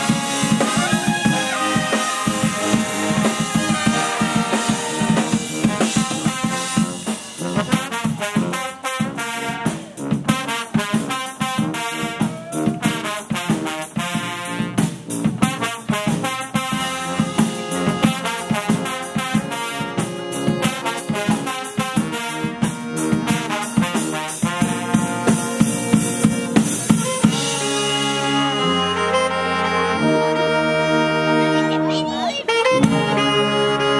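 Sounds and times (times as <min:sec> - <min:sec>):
sousaphone: 0:00.0 - 0:06.6, 0:25.2 - 0:29.3
drum kit steady beat: 0:00.0 - 0:28.7, 0:32.7 - 0:33.3
saxophones: 0:00.0 - 0:33.9
trombones: 0:00.0 - 0:33.9
trumpets: 0:00.0 - 0:33.9.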